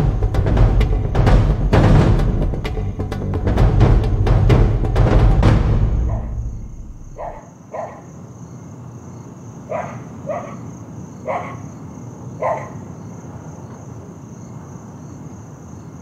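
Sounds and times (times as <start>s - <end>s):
crickets chirring: 0.0s - 16.0s
dog barking: 6.1s - 6.4s, 7.1s - 8.1s, 9.6s - 11.8s, 12.4s - 12.9s.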